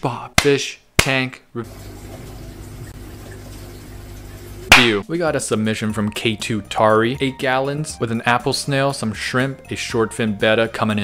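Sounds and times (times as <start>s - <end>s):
aquarium water running: 1.0s - 6.8s
man's voice: 4.8s - 11.0s.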